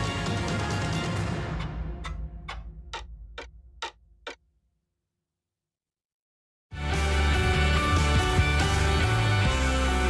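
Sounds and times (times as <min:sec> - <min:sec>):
clock ticks: 0:01.5 - 0:04.5.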